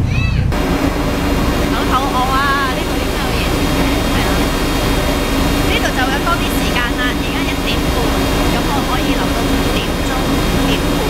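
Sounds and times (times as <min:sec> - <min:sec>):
ferry engine humming: 0:00.0 - 0:11.0
rush of noise: 0:00.0 - 0:11.0
woman talking: 0:01.6 - 0:11.0.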